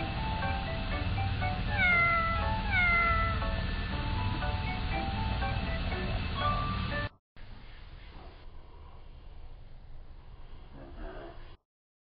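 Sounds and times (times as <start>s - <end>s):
light background music: 0.0s - 7.1s
cat meowing: 1.7s - 3.6s.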